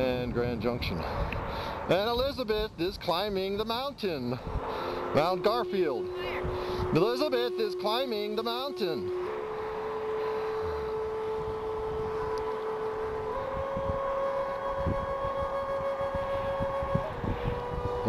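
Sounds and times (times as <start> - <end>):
wind buffeting microphone: 0.0 - 18.0
steady whistling tone: 4.4 - 18.0.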